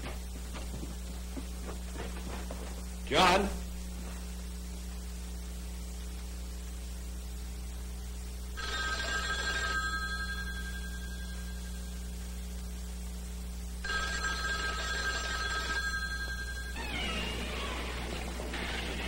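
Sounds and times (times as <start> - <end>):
telephone bell ringing: 8.6 - 12.0, 13.8 - 18.4.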